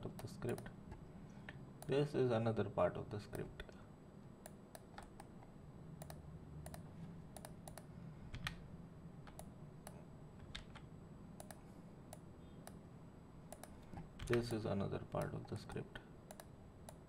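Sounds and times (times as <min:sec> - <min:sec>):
mouse and keyboard clicks: 0:06.0 - 0:08.6, 0:09.3 - 0:12.8.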